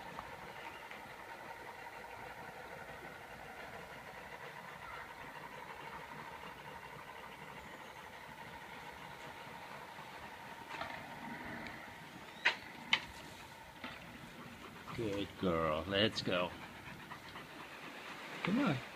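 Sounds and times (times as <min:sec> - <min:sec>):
faint mechanical hum: 0:00.0 - 0:18.9.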